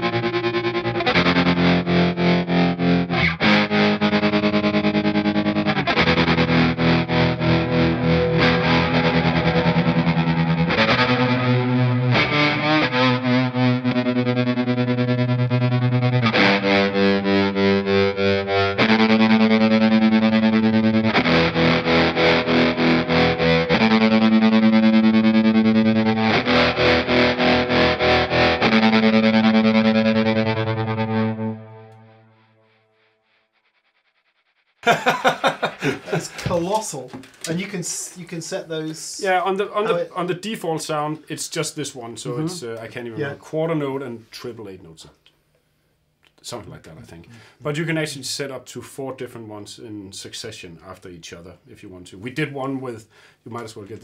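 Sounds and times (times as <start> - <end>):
overdriven electric guitar tremolo chords: 0.0 - 33.0.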